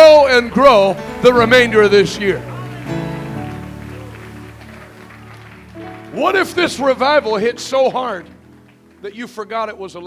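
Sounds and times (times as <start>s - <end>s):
electric keyboard sustained chords: 0.0s - 10.0s.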